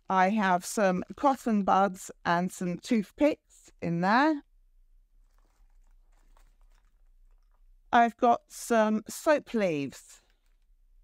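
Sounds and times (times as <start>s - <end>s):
faint rustling of packed items: 0.0s - 11.0s.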